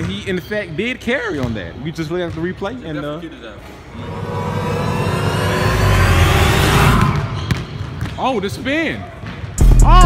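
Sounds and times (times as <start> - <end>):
engine revving: 4.0 - 7.3.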